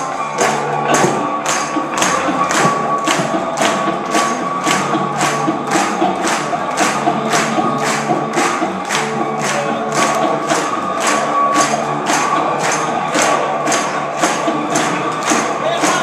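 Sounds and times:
audience clapping along: 0.0s - 16.0s.

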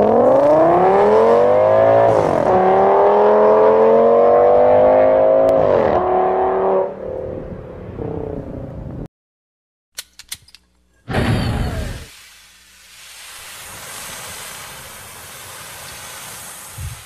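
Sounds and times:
car engine accelerating hard: 0.0s - 8.7s.

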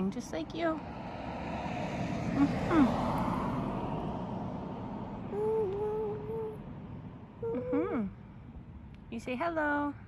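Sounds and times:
person humming mm-hmm: 5.3s - 6.6s, 7.4s - 8.2s.

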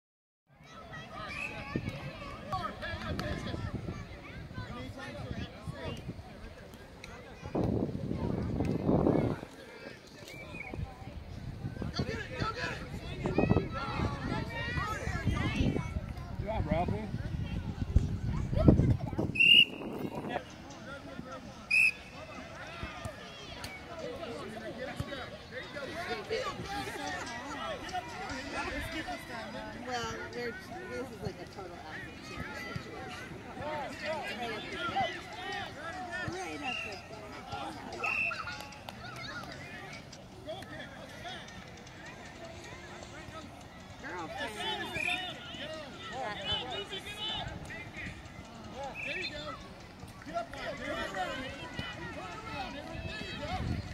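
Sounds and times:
children shouting and chatter: 0.5s - 53.9s
referee's whistle blast: 19.4s - 19.8s, 21.7s - 22.2s
distant voices shouting: 32.0s - 53.9s.

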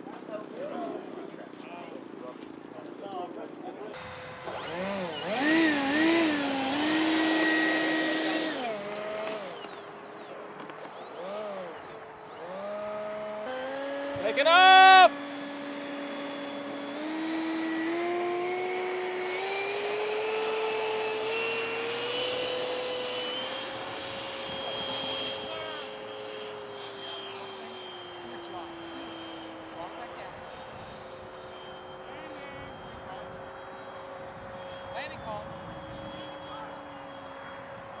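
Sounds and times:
electric ducted fan whine: 3.8s - 38.0s.

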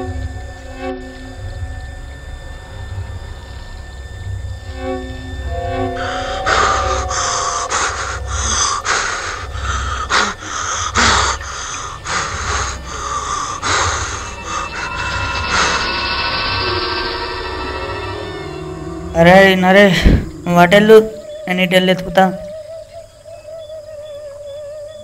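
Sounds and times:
faint held tones: 0.0s - 10.6s, 11.4s - 24.2s
low pulsing rumble: 0.0s - 21.5s
steady hiss: 0.0s - 24.5s
person panting hard: 7.7s - 15.0s.

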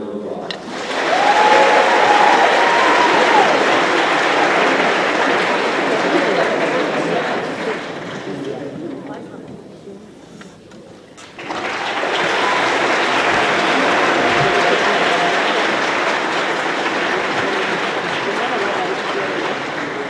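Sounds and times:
audience applause: 0.5s - 8.8s, 11.2s - 20.0s.

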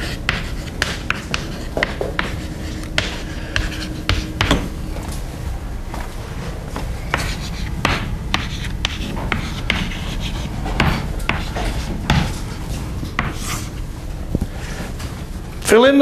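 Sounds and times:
chalk tapping and scratching: 0.0s - 4.7s, 7.0s - 13.7s
low room rumble: 0.0s - 16.0s.

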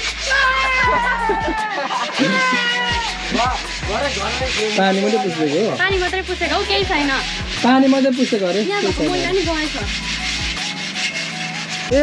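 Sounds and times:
faint music: 0.0s - 12.0s
rubbing on metal bars: 0.0s - 12.0s.

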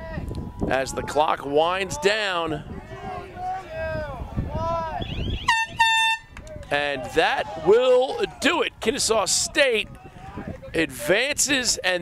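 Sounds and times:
game horn blasts: 5.5s - 6.3s.

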